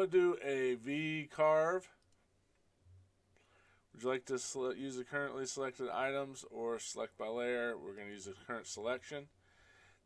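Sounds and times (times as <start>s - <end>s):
person speaking: 0.0s - 2.1s
soft breath: 3.3s - 3.9s, 9.4s - 10.0s.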